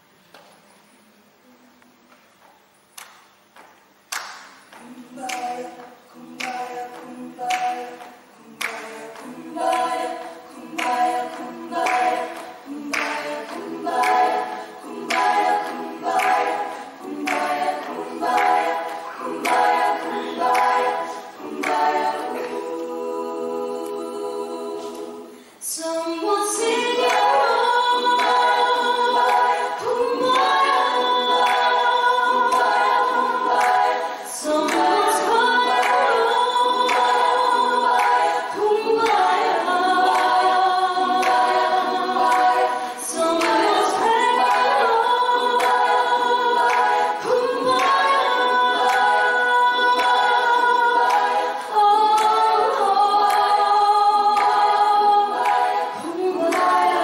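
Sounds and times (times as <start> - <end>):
women's choir singing a cappella: 4.2 - 57.0.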